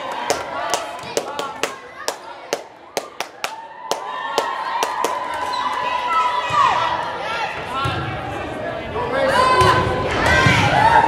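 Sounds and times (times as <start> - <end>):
hands clapping in rhythm: 0.0 - 5.5.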